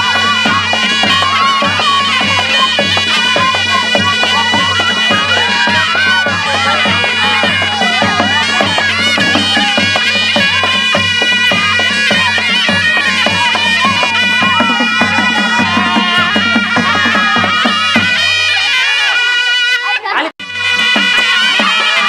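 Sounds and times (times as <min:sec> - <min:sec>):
regular drum beat: 0:00.0 - 0:19.1, 0:20.4 - 0:22.0
reedy wind instrument melody: 0:00.0 - 0:22.0.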